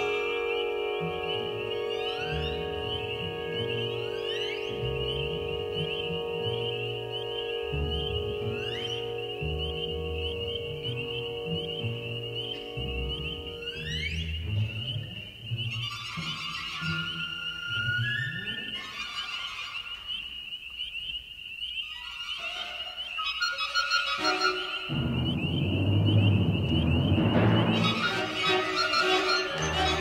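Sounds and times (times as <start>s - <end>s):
orchestral music with synthesizer: 0.0s - 19.6s, 23.2s - 30.0s.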